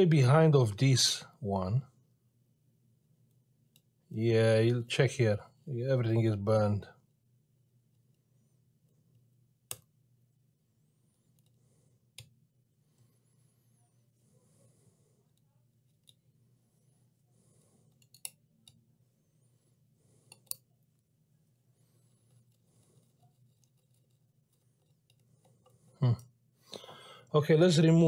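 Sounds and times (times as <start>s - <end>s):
faint low hum: 0.0s - 28.0s
metal tweezers clicking: 17.9s - 18.8s.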